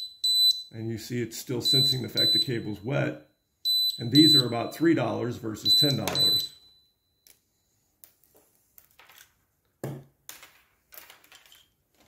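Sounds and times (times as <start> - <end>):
cables and plastic devices handled: 8.0 - 12.0.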